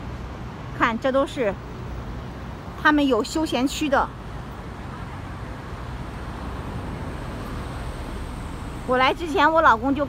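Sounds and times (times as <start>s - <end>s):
road traffic hum: 0.0s - 10.0s
low rumble: 6.6s - 10.0s.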